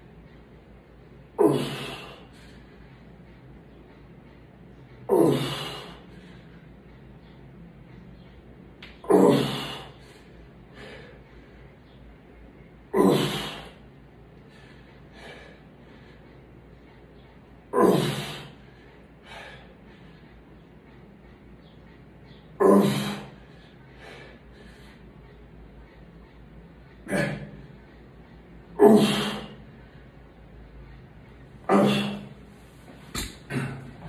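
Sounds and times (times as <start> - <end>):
man grunting: 1.4 - 2.2, 5.1 - 5.9, 9.0 - 9.9, 12.9 - 13.7, 17.7 - 18.5, 22.6 - 23.3, 27.1 - 27.6, 28.8 - 29.6, 31.7 - 32.3, 33.5 - 34.0.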